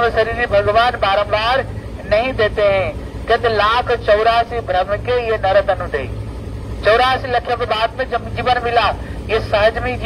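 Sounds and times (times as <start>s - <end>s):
man speaking: 0.0s - 6.2s, 6.8s - 10.0s
low steady hum: 0.0s - 10.0s.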